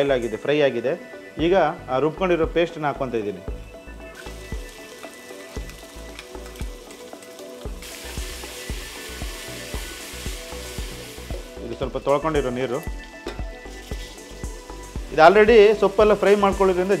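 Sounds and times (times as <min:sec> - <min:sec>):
paste sizzling in hot oil: 0:03.7 - 0:17.0.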